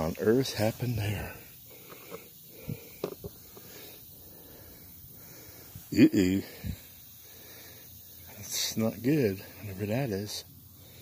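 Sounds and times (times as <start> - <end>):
background hiss: 0.0 - 11.0
camera handling knocks: 3.0 - 3.4.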